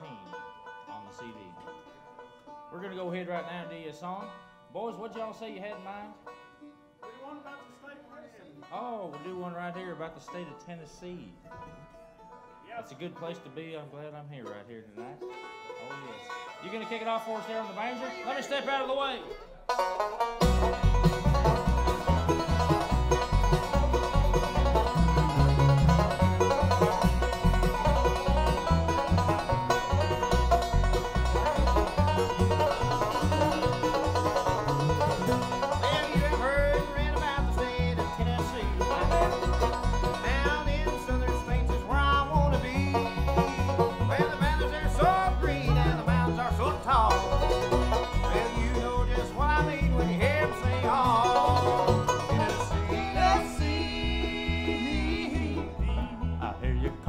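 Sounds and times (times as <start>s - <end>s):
acoustic guitar: 0.0s - 57.0s
banjo: 0.0s - 57.0s
mandolin: 0.0s - 57.0s
upright bass: 18.4s - 57.0s
sliding melody lines: 20.2s - 57.0s.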